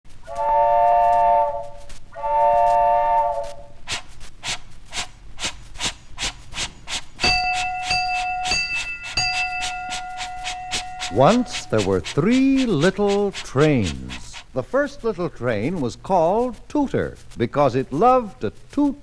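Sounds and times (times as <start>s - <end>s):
train chord whistle: 0.2s - 3.9s, 7.2s - 12.6s
train chugging rhythm: 0.4s - 19.0s
bell ringing: 7.2s - 11.8s.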